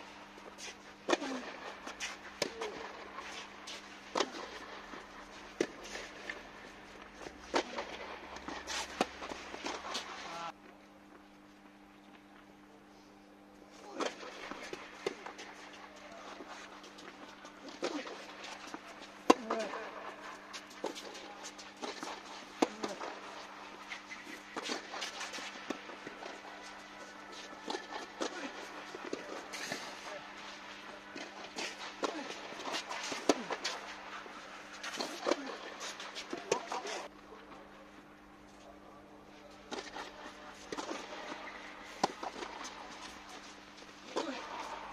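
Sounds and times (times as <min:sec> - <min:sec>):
steady low hum: 0:00.0 - 0:44.9
rackets striking tennis ball: 0:00.4 - 0:10.4, 0:13.8 - 0:37.1, 0:39.6 - 0:44.9
voices: 0:13.7 - 0:44.9.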